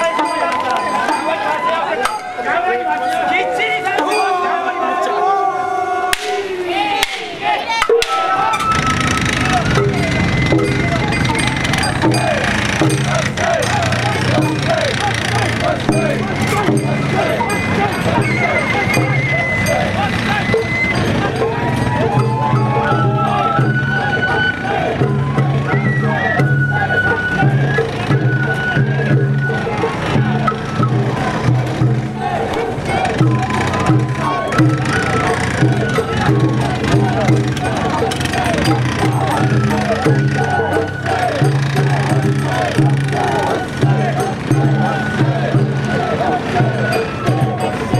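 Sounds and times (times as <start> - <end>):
bamboo flute melody: 0.0 - 47.9
crowd calling and shouting: 0.0 - 47.9
low drum band: 6.1 - 47.9.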